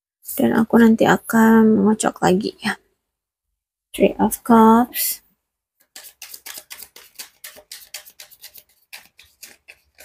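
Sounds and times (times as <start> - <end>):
cards being shuffled: 5.8 - 10.0.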